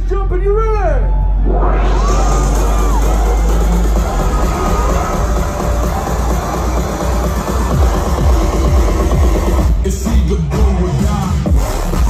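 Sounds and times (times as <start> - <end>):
electronic dance music: 0.2 - 12.0.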